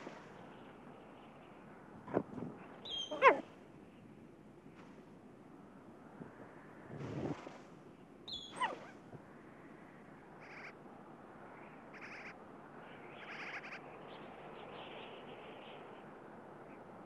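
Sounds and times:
marmot alarm chirps: 0:02.9 - 0:03.4.

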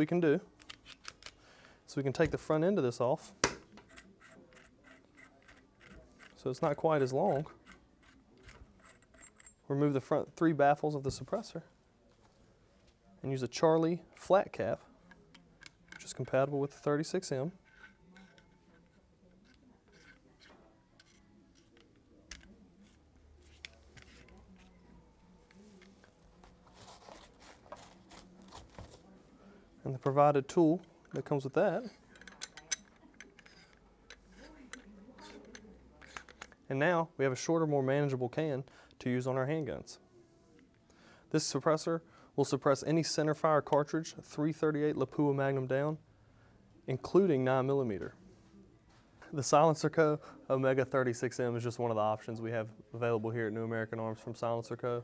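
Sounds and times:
small metallic ticks and scrapes: 0:03.8 - 0:06.4, 0:07.3 - 0:09.6, 0:17.6 - 0:23.0, 0:32.0 - 0:36.6.

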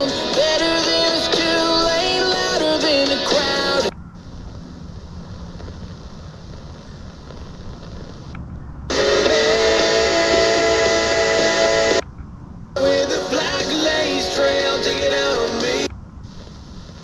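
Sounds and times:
faint hissy radio station: 0:00.0 - 0:12.0, 0:12.8 - 0:17.0
radio music with held notes: 0:00.0 - 0:12.1, 0:12.8 - 0:17.0.

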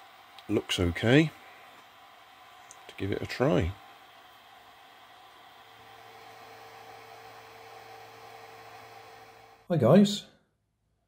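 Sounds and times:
cooling fans humming: 0:00.0 - 0:09.7.

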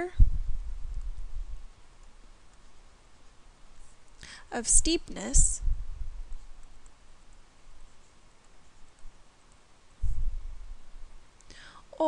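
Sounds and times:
low background noise: 0:00.0 - 0:12.0
person breathing: 0:04.2 - 0:04.5, 0:11.5 - 0:11.9
dull low thump: 0:10.0 - 0:10.4.

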